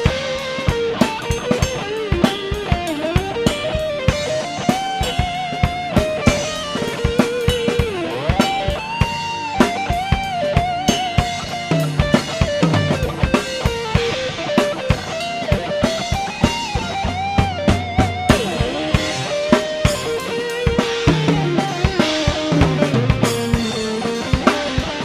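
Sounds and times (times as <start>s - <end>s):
drum kit rock beat: 0.0s - 25.0s
electric guitar solo: 0.0s - 25.0s.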